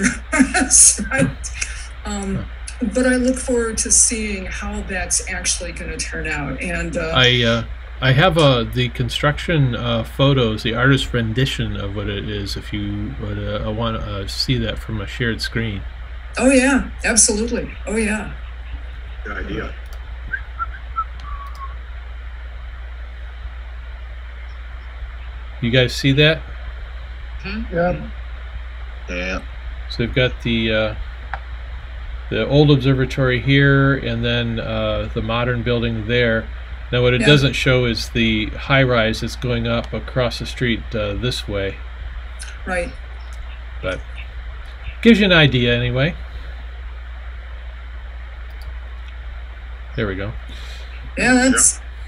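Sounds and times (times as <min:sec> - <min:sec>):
faint background hiss: 0:00.0 - 0:52.0
steady low hum: 0:00.0 - 0:52.0
faint clicks: 0:19.8 - 0:21.8, 0:43.2 - 0:45.0, 0:48.4 - 0:49.2.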